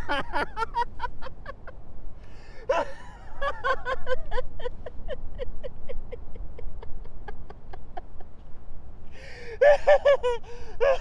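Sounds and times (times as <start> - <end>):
man laughing: 0.0 - 1.7, 2.7 - 8.4, 9.6 - 11.0.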